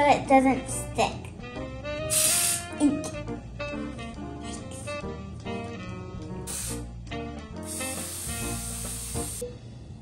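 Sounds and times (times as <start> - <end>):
cooking spray hissing from can: 2.1 - 2.8, 6.4 - 6.9, 7.6 - 9.4.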